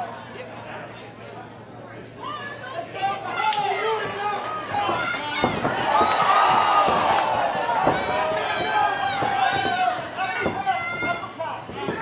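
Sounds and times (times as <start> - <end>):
spectators shouting: 2.4 - 12.0.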